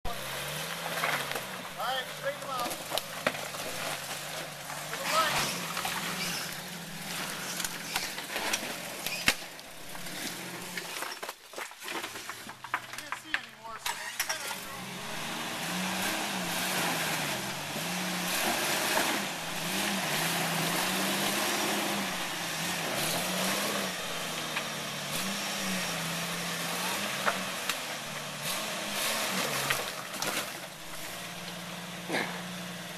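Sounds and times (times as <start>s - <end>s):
tires knocking and scraping on rocks: 0.0s - 32.9s
engine revving at low speed: 0.1s - 11.0s, 14.5s - 32.9s.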